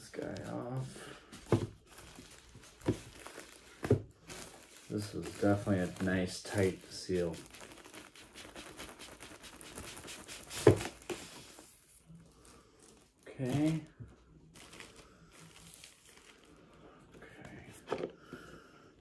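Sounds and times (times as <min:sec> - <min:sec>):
plastic wrap crinkling and tearing: 0:01.8 - 0:16.7.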